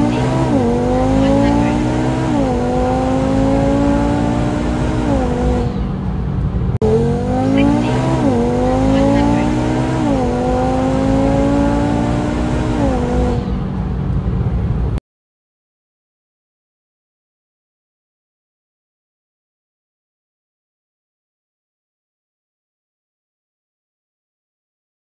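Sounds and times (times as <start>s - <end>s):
car engine at full throttle: 0.0s - 15.0s.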